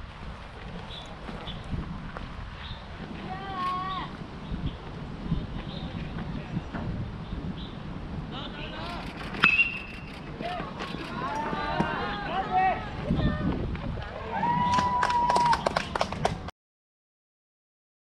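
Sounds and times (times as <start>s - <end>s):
voices calling out: 8.3s - 15.8s
long held shout: 14.2s - 15.6s.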